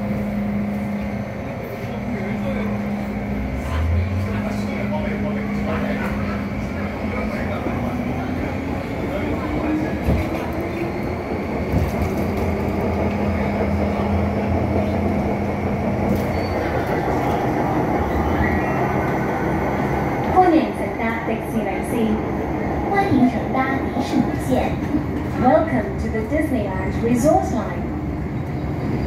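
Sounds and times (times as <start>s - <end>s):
wheels rumbling on rail: 0.0s - 29.0s.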